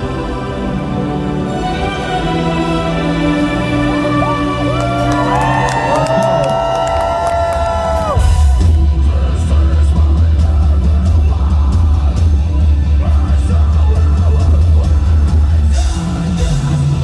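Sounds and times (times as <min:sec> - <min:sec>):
heavy metal band playing: 0:00.0 - 0:17.0
crowd singing and yelling: 0:08.0 - 0:17.0.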